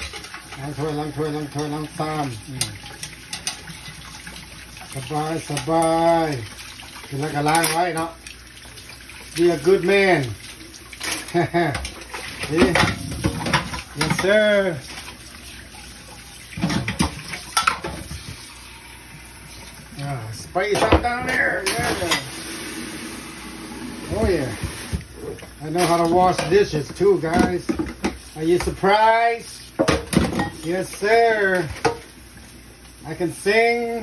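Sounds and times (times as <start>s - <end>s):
kitchen tap running: 0.0s - 34.0s
water splashing in metal sink: 0.0s - 34.0s
dishes knocking: 20.7s - 21.4s, 29.8s - 30.6s.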